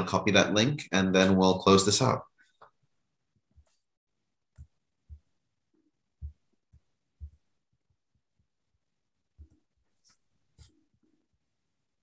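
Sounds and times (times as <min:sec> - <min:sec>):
faint low dull thumps: 0:06.2 - 0:08.5.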